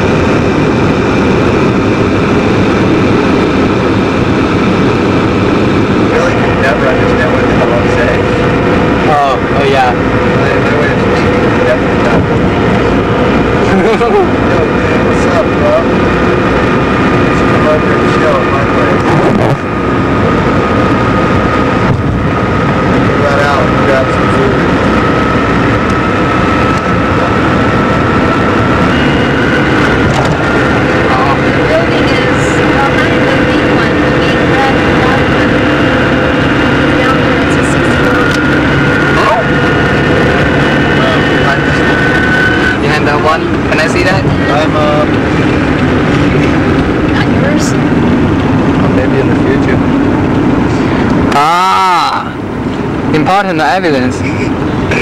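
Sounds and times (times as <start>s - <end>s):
faint whine: 0.0s - 55.0s
road and engine noise in car: 0.0s - 55.0s.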